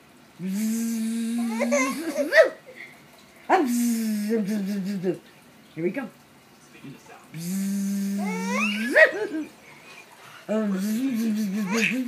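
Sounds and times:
woman imitating bee buzzing: 0.4s - 2.2s, 7.4s - 9.0s.

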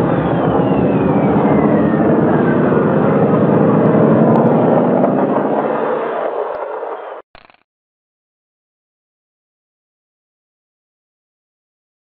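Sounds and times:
spaceship engine rumble: 0.0s - 7.2s
whistle gliding down: 0.0s - 7.2s.

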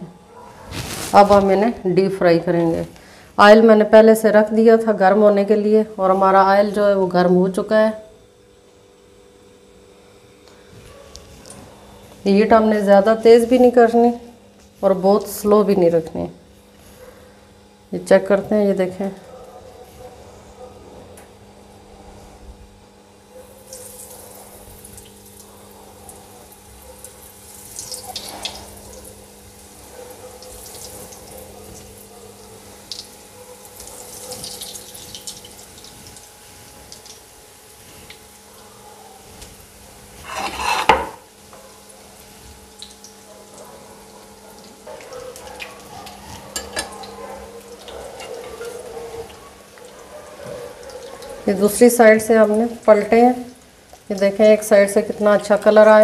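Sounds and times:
chicken deep-frying in oil: 23.2s - 56.0s.

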